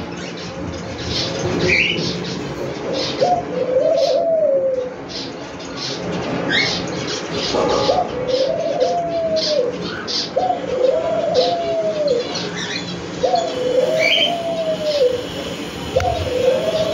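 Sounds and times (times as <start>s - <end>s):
cockatiels chirping: 1.0s - 3.2s, 5.1s - 15.3s
dove cooing: 3.2s - 4.9s, 7.5s - 16.9s.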